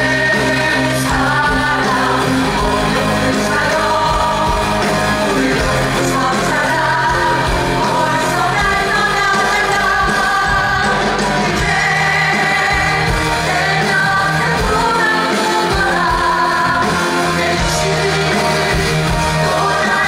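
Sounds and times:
band playing through speakers: 0:00.0 - 0:20.0
male and female voices singing: 0:00.0 - 0:20.0.

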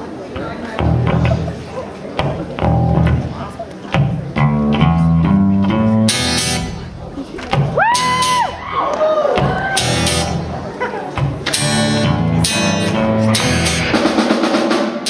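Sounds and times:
live rock band playing: 0:00.6 - 0:15.0.

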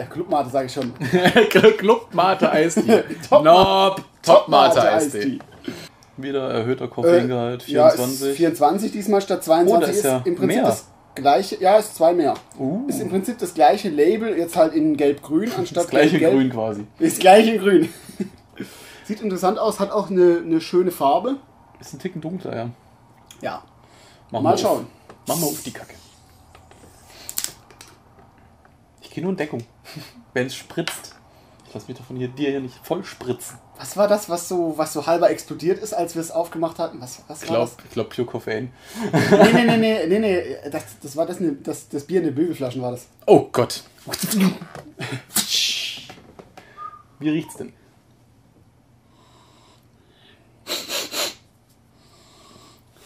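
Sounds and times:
carbonation hiss: 0:25.2 - 0:27.5
person sniffing: 0:50.6 - 0:52.8.

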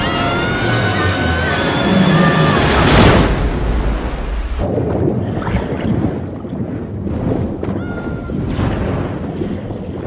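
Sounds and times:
rushing flood water: 0:00.0 - 0:06.0.

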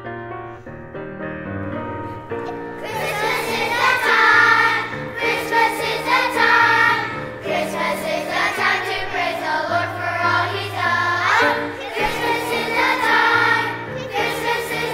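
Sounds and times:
piano accompaniment: 0:00.0 - 0:14.9
children's choir singing: 0:02.7 - 0:14.9.

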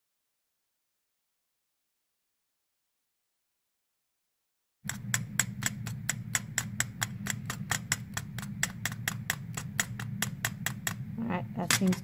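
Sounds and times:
knife chopping on plastic board: 0:04.9 - 0:12.0.

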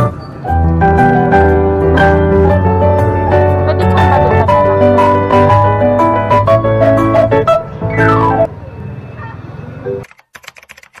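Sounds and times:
keyboard typing clicks: 0:10.0 - 0:11.0.

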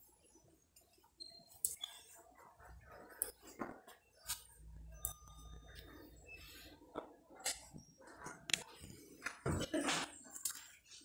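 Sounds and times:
busy shop background: 0:00.0 - 0:11.0.

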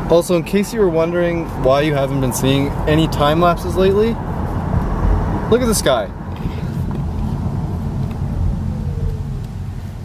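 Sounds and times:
car cabin rumble: 0:01.2 - 0:10.0.

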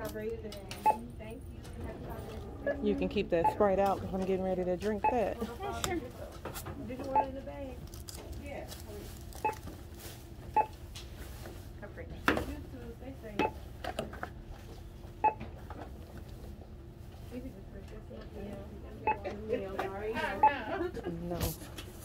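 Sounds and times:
barcode scanner beeps: 0:00.8 - 0:01.1, 0:03.4 - 0:03.9, 0:04.8 - 0:05.4, 0:07.1 - 0:07.4, 0:19.0 - 0:19.3.

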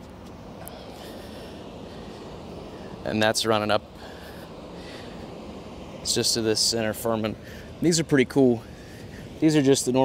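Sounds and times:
outdoor background rumble and hiss: 0:00.0 - 0:10.0.

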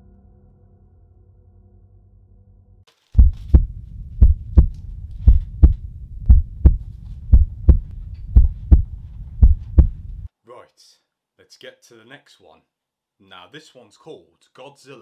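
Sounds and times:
heartbeat: 0:03.2 - 0:10.3
low rumble: 0:03.2 - 0:10.3.

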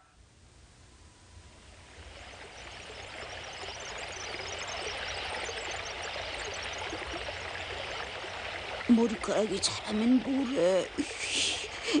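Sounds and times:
stream of running water: 0:01.6 - 0:12.0.

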